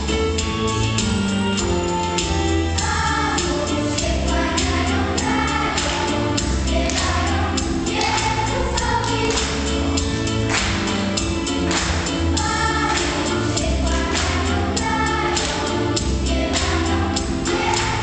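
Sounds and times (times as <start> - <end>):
instrumental accompaniment with beat: 0.0 - 18.0
children's choir singing: 1.6 - 18.0.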